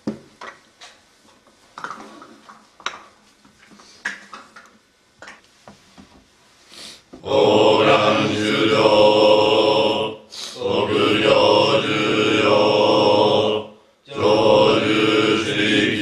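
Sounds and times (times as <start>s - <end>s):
monks chanting in unison: 7.2s - 16.0s.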